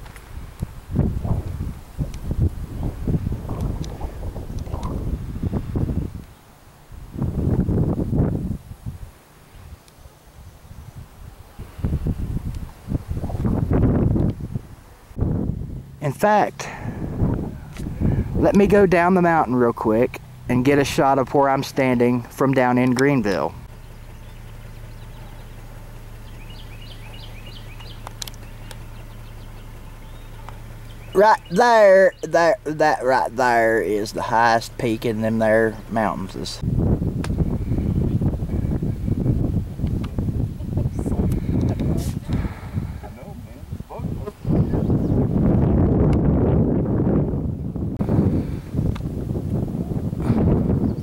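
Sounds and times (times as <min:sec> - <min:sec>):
wind buffeting microphone: 0:00.0 - 0:09.8, 0:10.4 - 0:51.0
steady low hum: 0:00.0 - 0:51.0
small bird chirping: 0:23.6 - 0:32.3
sharp clicks: 0:27.8 - 0:29.1.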